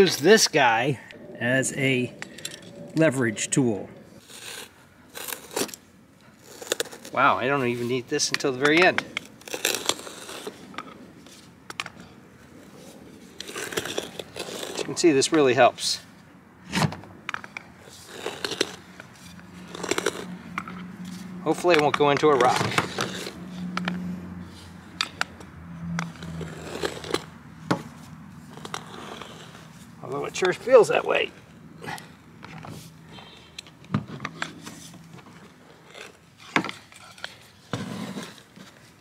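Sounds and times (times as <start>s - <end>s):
metal stake scraping in soil: 1.9s - 11.5s, 13.3s - 15.4s, 17.8s - 23.9s, 26.0s - 27.3s
metal clicking and scraping on wood: 17.2s - 24.0s, 24.9s - 29.7s.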